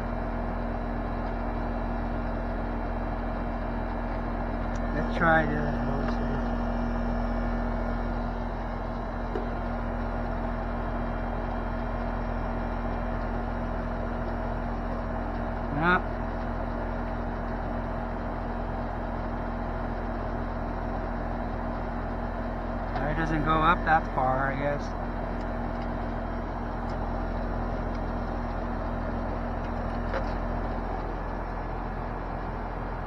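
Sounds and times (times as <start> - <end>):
air conditioning unit humming: 0.0 - 14.2, 18.0 - 33.0.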